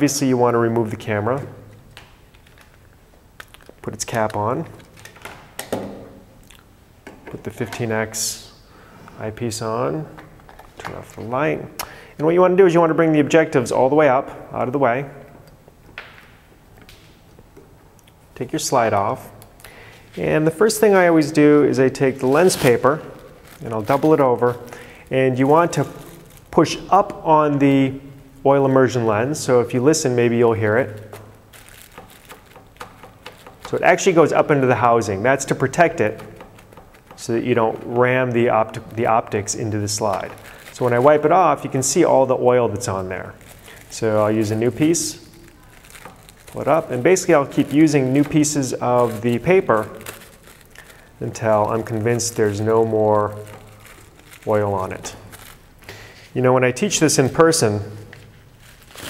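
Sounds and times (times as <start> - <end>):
lens paper rustling: 43.4 - 55.7.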